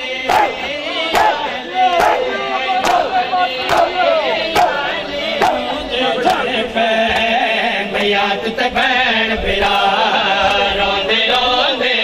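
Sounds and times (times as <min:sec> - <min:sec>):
men chanting together: 0:00.0 - 0:12.0
hands slapping bare chests: 0:02.0 - 0:02.2, 0:02.8 - 0:03.1, 0:04.6 - 0:04.8.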